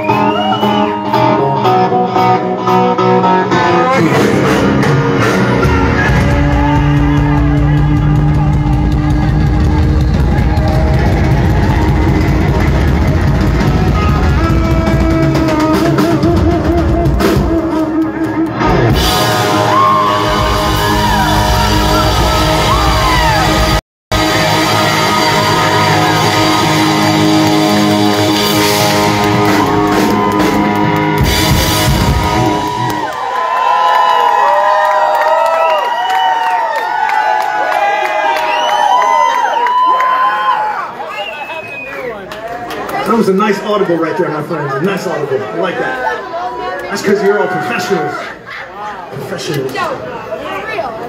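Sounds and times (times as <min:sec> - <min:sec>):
live rock band playing: 0:00.0 - 0:33.2.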